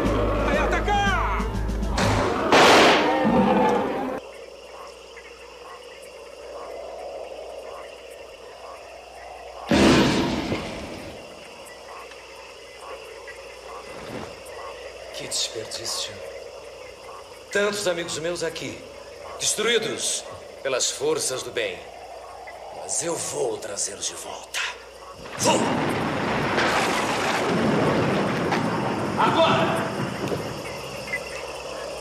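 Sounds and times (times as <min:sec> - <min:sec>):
frogs croaking: 0:00.0 - 0:32.0
man shouting: 0:00.3 - 0:01.5
sudden loud noise: 0:01.9 - 0:04.2, 0:09.6 - 0:11.2
gunshot bang: 0:02.0 - 0:03.2, 0:09.7 - 0:10.8.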